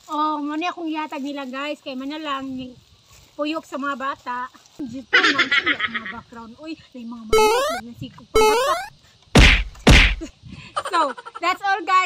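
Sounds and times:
loud short whacks with deep thud: 9.4 - 10.3.

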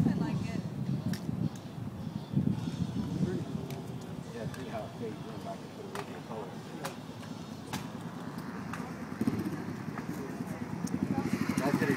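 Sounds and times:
voices in background: 2.4 - 11.9.

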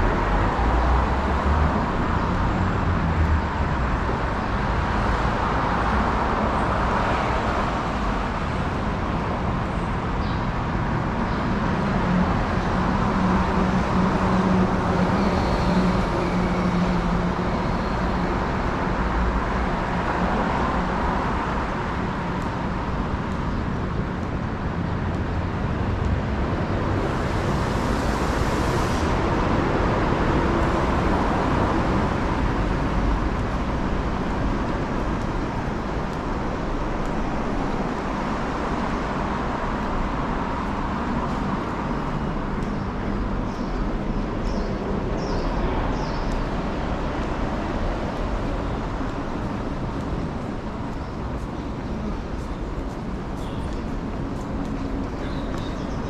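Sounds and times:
city road traffic hum: 0.0 - 56.0.

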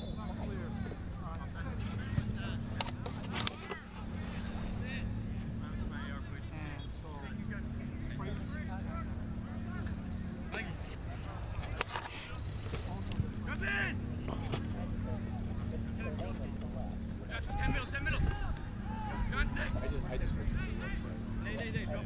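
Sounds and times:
distant shouts and calls: 0.0 - 22.0
steady low hum: 0.0 - 22.0.

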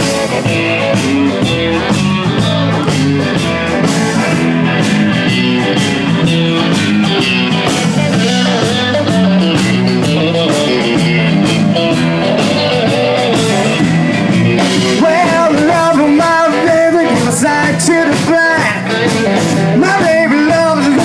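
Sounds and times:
amplified electric guitars: 0.0 - 21.0
drum kit steady beat: 0.0 - 21.0.

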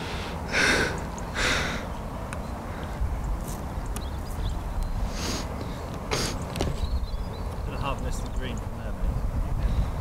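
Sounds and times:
breathy rushes of air: 0.0 - 1.9
wind rumble on microphone: 2.0 - 10.0.

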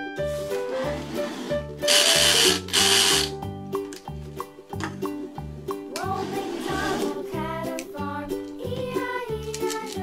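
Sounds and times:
background music with steady beat: 0.0 - 10.0
toy blender running: 1.9 - 3.3.

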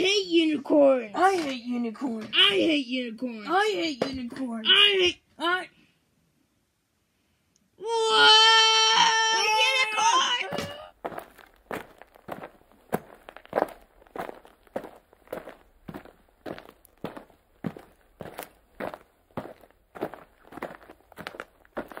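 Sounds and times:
slow footsteps: 10.5 - 22.0.

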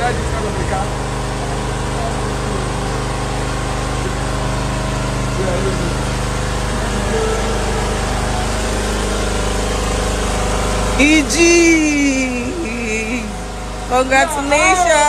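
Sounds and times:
faint voices murmuring: 0.0 - 15.0
steady engine hum: 0.0 - 15.0.

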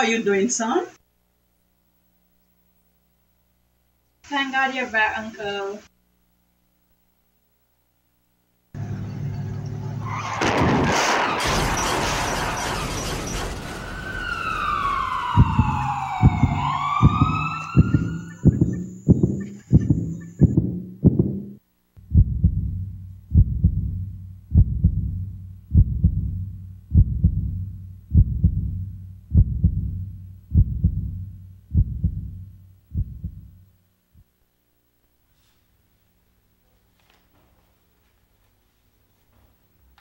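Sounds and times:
siren-like wailing tone: 11.4 - 20.3
heartbeat thuds: 15.3 - 33.7.

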